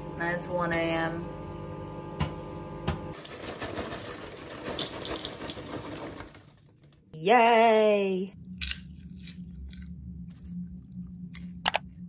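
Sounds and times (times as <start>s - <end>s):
popcorn tumbling into a bowl: 3.2s - 7.0s.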